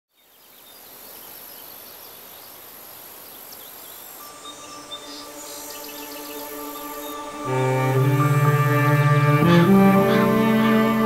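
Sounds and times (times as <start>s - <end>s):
birds chirping: 0.1s - 11.0s
insect buzz: 0.2s - 11.0s
held music notes: 4.3s - 11.0s.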